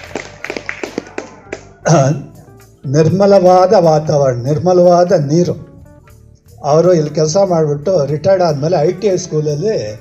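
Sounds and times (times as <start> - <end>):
man talking: 1.9 - 5.7, 6.5 - 10.0.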